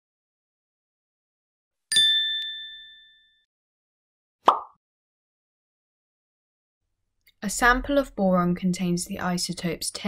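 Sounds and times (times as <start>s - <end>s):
bright bell-like ding: 1.9s - 3.4s.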